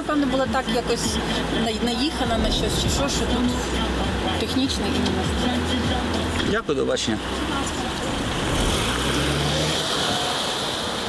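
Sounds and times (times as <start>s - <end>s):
street traffic: 0.0s - 11.0s
car engine pulling away: 1.9s - 11.0s.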